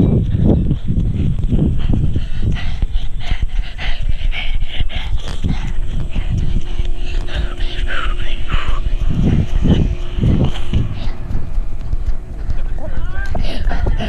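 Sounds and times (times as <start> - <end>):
rhythmic low thuds: 0.0 - 14.0
child panting: 0.2 - 11.6, 12.4 - 14.0.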